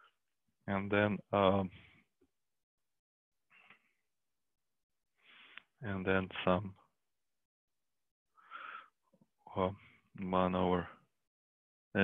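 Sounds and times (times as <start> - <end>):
man speaking: 0.7 - 1.8
man breathing in: 8.4 - 9.0.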